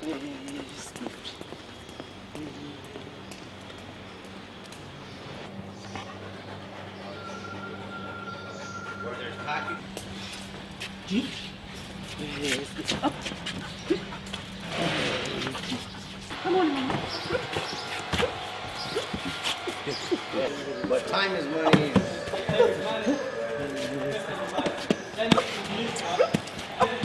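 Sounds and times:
steady low hum: 0.0 - 27.0
dog whimpering: 6.1 - 9.8, 21.5 - 25.5.

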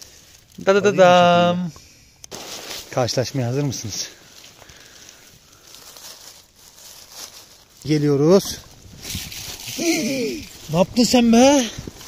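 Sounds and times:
dry leaves rustling and crackling: 0.0 - 1.5, 2.3 - 12.0
man's voice: 0.6 - 1.7.

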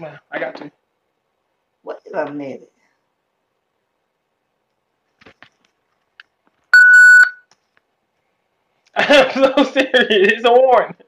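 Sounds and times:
electronic beep: 6.8 - 7.4.

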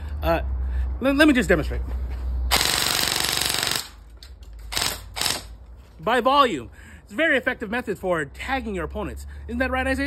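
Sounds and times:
airsoft rifle full-auto burst: 2.5 - 4.0, 4.7 - 5.6.

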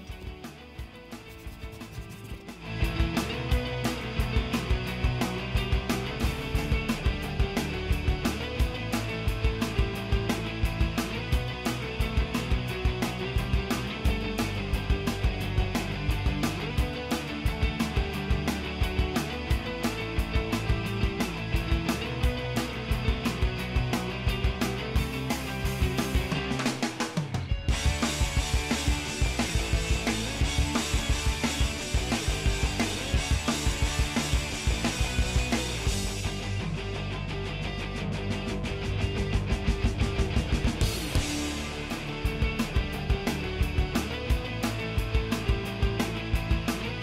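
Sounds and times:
background music with drum beat: 0.0 - 47.0.

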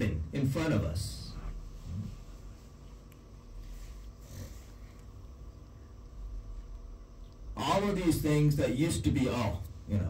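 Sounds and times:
low room rumble: 0.0 - 10.0
breath into microphone: 3.6 - 5.1.

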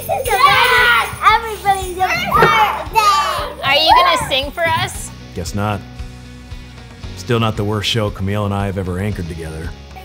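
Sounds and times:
children yelling and shrieking: 0.0 - 4.8.

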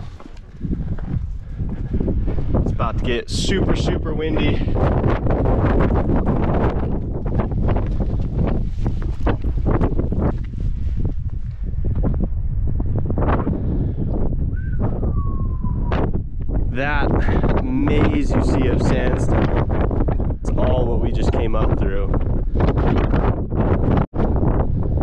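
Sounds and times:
wind buffeting microphone: 0.0 - 25.0.

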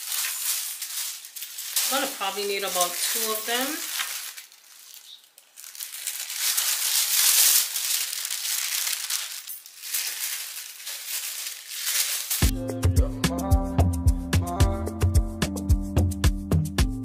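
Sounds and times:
tissue paper rustling: 0.0 - 12.5
background music with steady beat: 12.5 - 17.0.

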